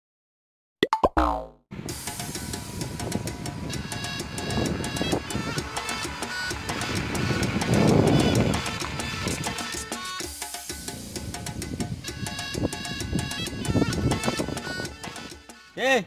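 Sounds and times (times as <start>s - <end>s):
comic falling twang: 0.8s - 1.6s
upbeat music with percussive beat: 0.8s - 15.8s.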